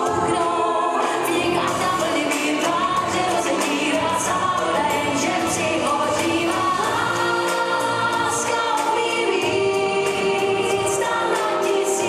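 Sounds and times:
pop song with vocals: 0.0s - 12.0s.

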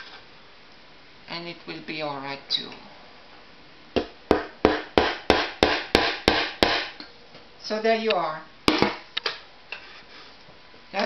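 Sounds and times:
hammer hitting nail: 4.0s - 7.0s.

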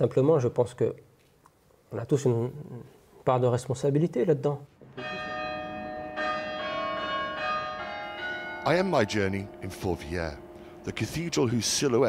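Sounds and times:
church bells ringing: 4.8s - 12.0s.

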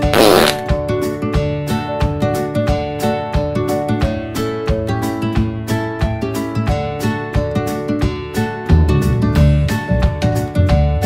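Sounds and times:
fart sound: 0.0s - 0.6s
background music with steady beat: 0.0s - 11.0s.

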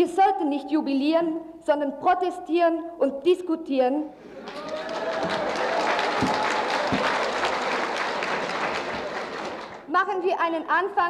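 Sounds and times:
audience applauding: 4.2s - 9.9s.

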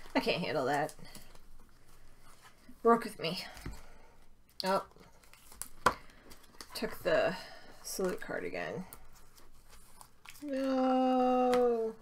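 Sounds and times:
handling of cards: 0.0s - 2.8s, 4.5s - 7.1s, 7.7s - 12.0s.

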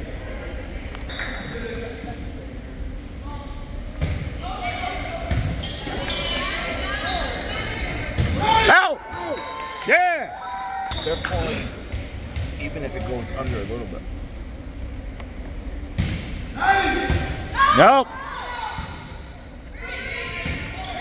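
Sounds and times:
crowd chatter: 0.0s - 10.2s
loud short squeaks: 4.1s - 6.4s, 18.8s - 19.6s.

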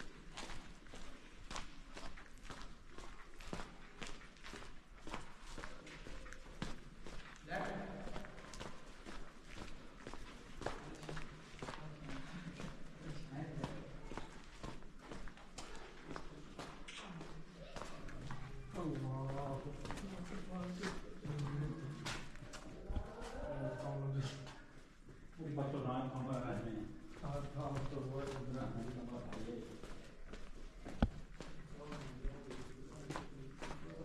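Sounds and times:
footsteps on dusty floor: 0.0s - 34.0s
people talking: 15.6s - 24.6s, 25.4s - 29.8s.

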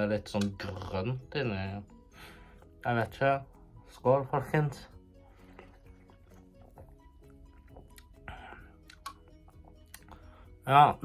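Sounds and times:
faint background music: 0.0s - 11.0s
sipping and swallowing from can: 5.4s - 10.2s.

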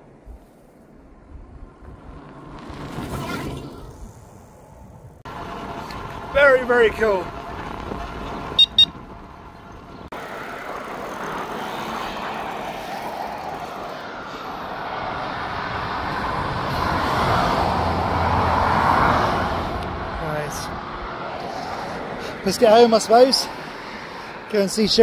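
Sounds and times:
low traffic rumble: 0.0s - 25.0s
road traffic hiss: 3.8s - 25.0s.

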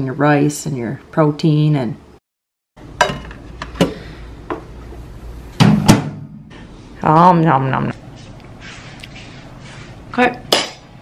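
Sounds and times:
microwave humming: 2.8s - 6.6s.

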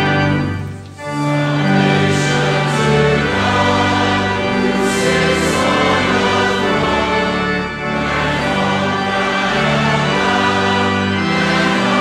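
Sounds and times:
instrumental accompaniment: 0.0s - 12.0s
choir singing a hymn: 1.0s - 12.0s.

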